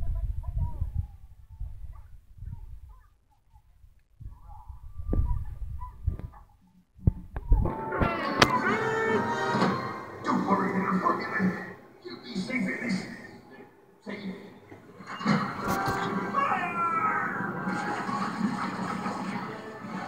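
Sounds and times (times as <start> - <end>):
low dull thuds: 4.2 - 8.1
film music and effects: 7.7 - 13.2, 15.0 - 20.0.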